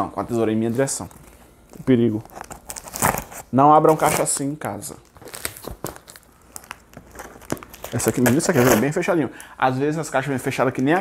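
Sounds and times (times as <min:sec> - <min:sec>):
plastic wrapping crinkling: 0:00.7 - 0:09.5.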